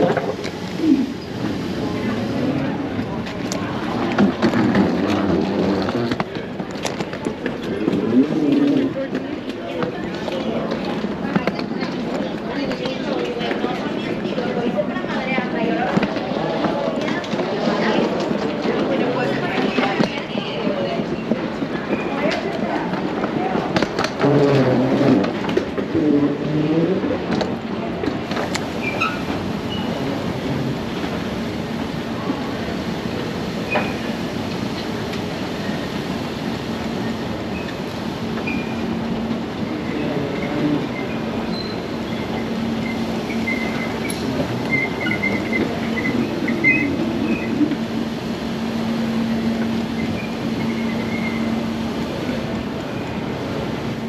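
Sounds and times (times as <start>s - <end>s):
indistinct voices: 0.0s - 28.4s, 38.8s - 54.0s.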